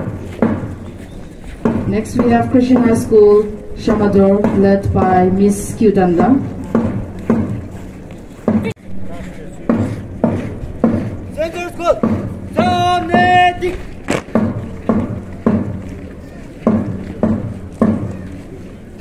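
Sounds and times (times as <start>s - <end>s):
marching drum beat: 0.0s - 7.7s, 8.4s - 9.1s, 9.7s - 18.4s
shouted drill command: 11.4s - 13.8s.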